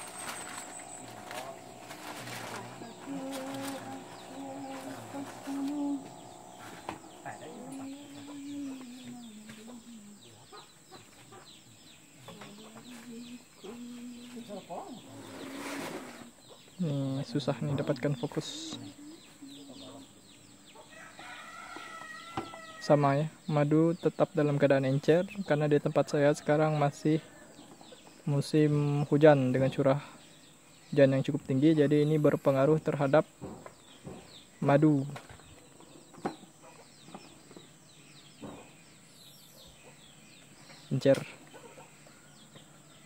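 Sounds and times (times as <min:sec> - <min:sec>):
high insect drone: 0:00.0 - 0:10.7
birds chirping: 0:00.0 - 0:43.0
rooster crowing: 0:20.8 - 0:23.0.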